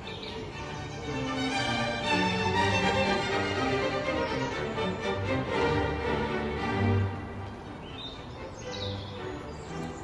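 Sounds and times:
quiet sustained background music: 0.0s - 10.0s
small birds chirping: 0.0s - 10.0s.

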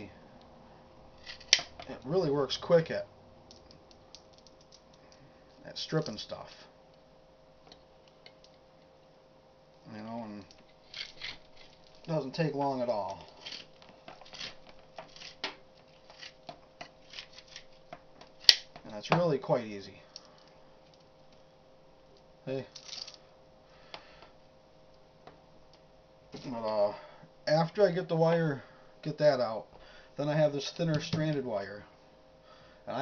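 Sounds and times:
wire stripper scraping insulation: 10.5s - 18.6s.

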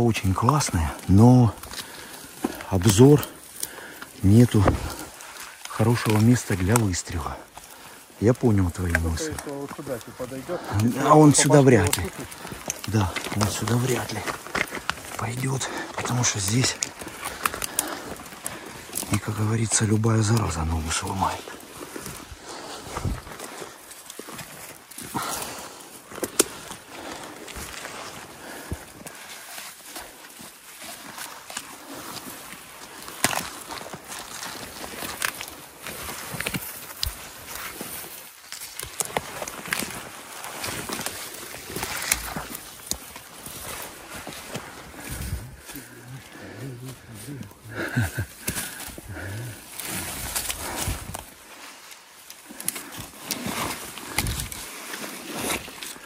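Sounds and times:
branches scraping against clothing: 0.0s - 56.0s
dry twigs snapping: 0.0s - 56.0s
footsteps on brush: 0.0s - 56.0s.

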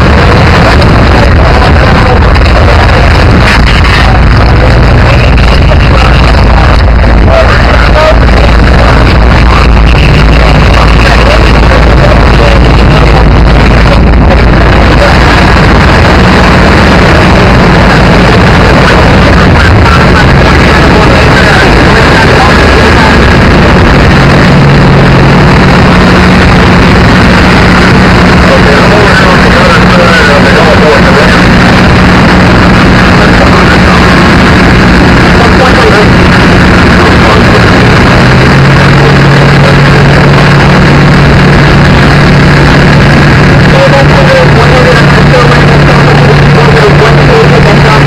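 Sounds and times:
indistinct voices: 0.0s - 48.0s.

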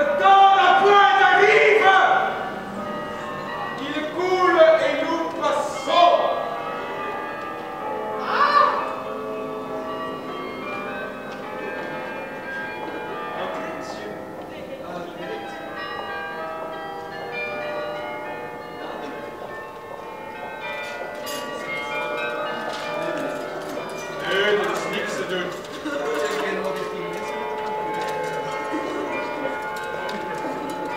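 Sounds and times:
church bells ringing: 0.0s - 30.9s.

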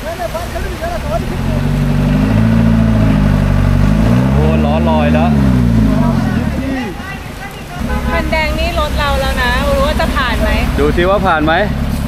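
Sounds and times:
van engine revving: 0.0s - 12.0s.

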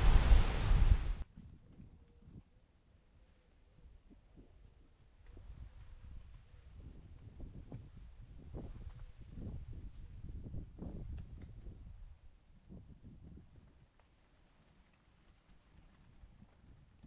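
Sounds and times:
wind buffeting microphone: 0.0s - 2.4s, 4.3s - 13.8s.

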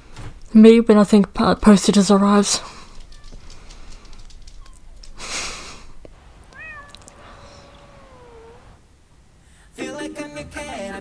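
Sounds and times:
cat meowing: 3.0s - 3.6s, 6.2s - 8.8s
music: 9.7s - 11.0s.

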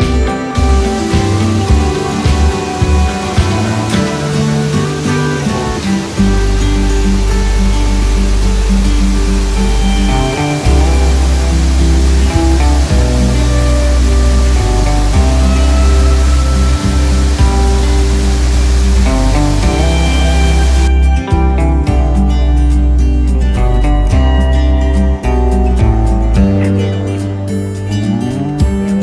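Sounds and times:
background music: 0.0s - 29.0s
small waterfall rushing: 0.6s - 20.9s.

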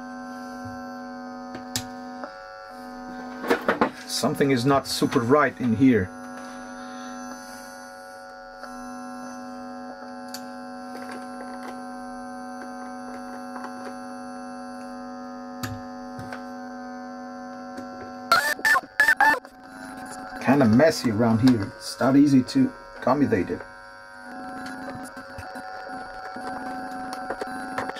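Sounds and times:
buzzy amplifier hum: 0.0s - 27.9s.

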